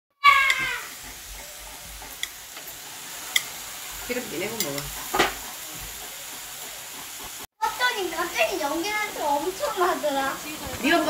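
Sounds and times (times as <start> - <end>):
outdoor background hiss: 0.3 - 11.0.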